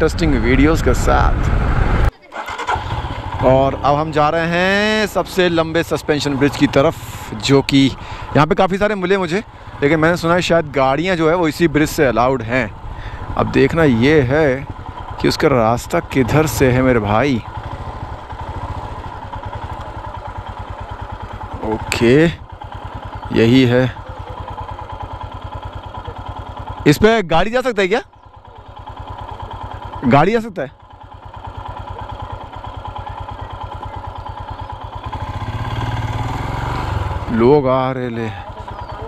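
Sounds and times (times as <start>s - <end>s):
motorcycle engine running slowly: 0.0s - 39.0s.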